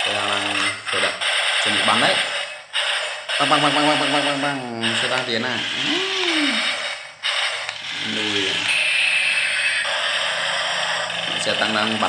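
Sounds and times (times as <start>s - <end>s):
high motor whine: 0.0s - 12.0s
toy gear motors whirring: 0.0s - 12.0s.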